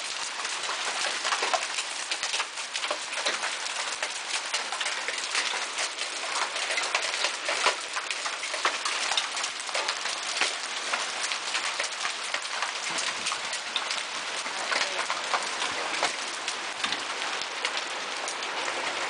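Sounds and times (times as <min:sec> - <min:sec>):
hailstones pelting the ground: 0:00.0 - 0:19.0.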